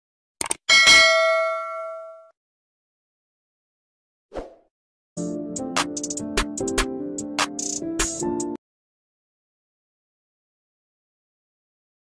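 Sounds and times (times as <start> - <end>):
bright bell ding: 0.7 - 2.3.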